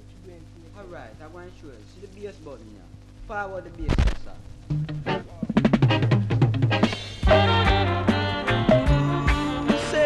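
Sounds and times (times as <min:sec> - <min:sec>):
reggae music on radio: 0:01.8 - 0:10.0
drum fill: 0:03.9 - 0:10.0.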